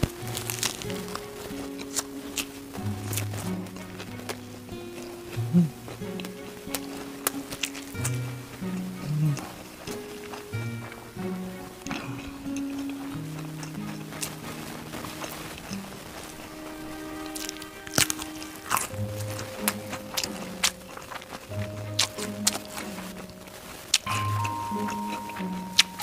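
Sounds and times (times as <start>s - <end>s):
crunchy chewing: 0.0s - 26.0s
music with held low notes: 0.0s - 26.0s.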